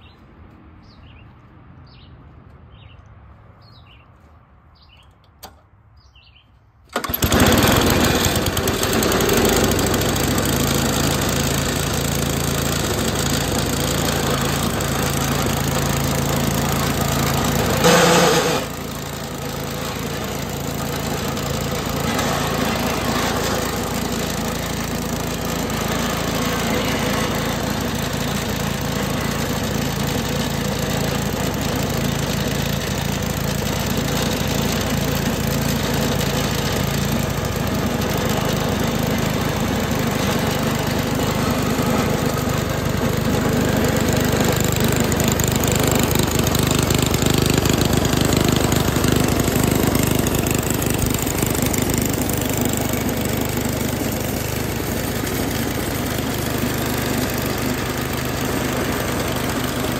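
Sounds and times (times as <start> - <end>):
snow blower engine running: 6.9 - 59.9.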